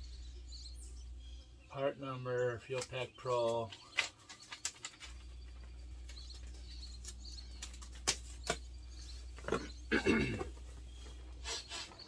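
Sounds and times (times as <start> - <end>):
steady low hum: 0.0 - 2.9, 5.0 - 11.5.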